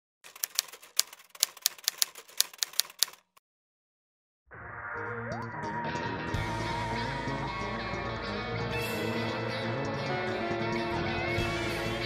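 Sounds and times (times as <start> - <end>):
typewriter keys clacking: 0.2 - 3.4.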